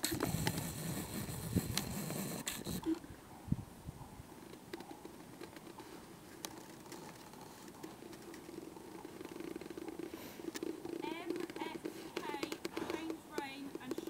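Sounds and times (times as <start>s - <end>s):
horse hoofbeats on sand: 9.8s - 14.0s.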